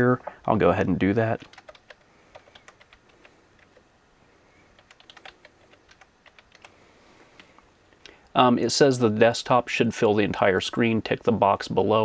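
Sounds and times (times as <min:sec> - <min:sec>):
keyboard typing: 0:01.4 - 0:03.8, 0:04.7 - 0:06.8.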